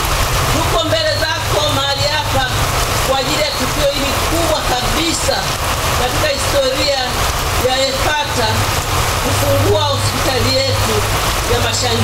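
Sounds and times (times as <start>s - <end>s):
rain on umbrellas: 0.0s - 12.0s.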